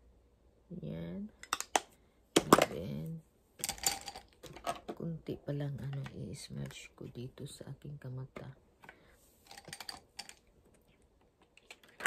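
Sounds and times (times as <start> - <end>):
makeup items clicking: 1.4 - 2.8, 3.6 - 5.1, 8.3 - 12.0.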